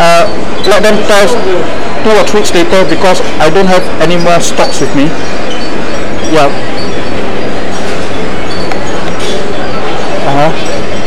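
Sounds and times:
distorted shopping mall ambience: 0:00.0 - 0:11.0.

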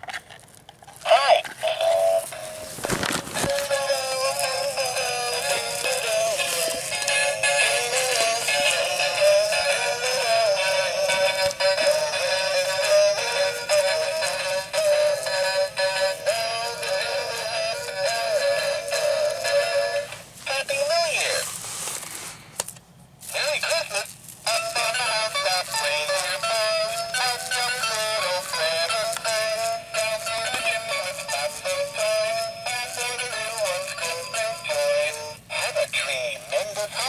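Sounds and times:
toy singing through small speaker: 0:01.1 - 0:02.5, 0:03.5 - 0:21.4, 0:23.3 - 0:37.0.

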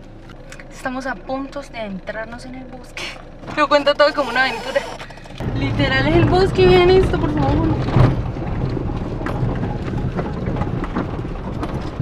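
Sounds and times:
truck engine and road rumble: 0:00.0 - 0:12.0
knocks and rattles: 0:05.0 - 0:12.0.

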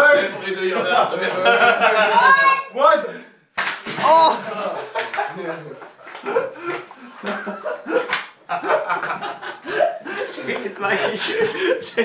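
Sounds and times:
person speaking: 0:10.1 - 0:12.0.

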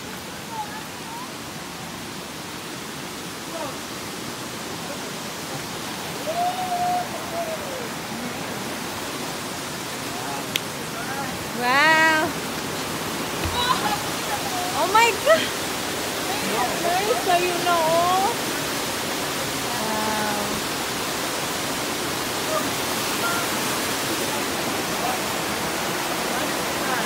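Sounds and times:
waterfall and stream rushing: 0:00.0 - 0:27.0
people calling out: 0:06.2 - 0:08.3, 0:13.4 - 0:18.4.

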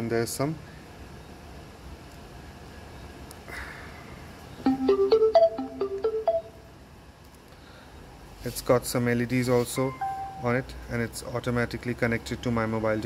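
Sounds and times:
soft rustle: 0:08.3 - 0:09.9.

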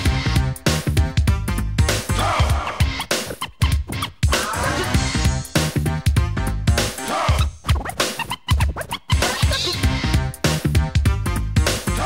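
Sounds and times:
hip-hop beat with bass drum: 0:00.0 - 0:12.0
turntable scratching: 0:01.8 - 0:05.8, 0:06.7 - 0:10.6.

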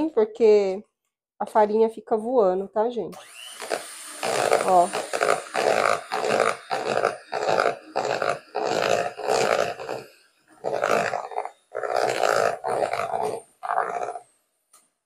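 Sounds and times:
electric hand mixer beating batter: 0:03.2 - 0:14.2.

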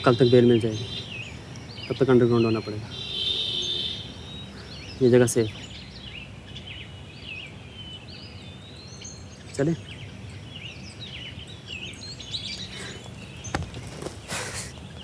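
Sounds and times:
small birds chirping: 0:00.0 - 0:15.0
brief rustle: 0:12.8 - 0:14.8.

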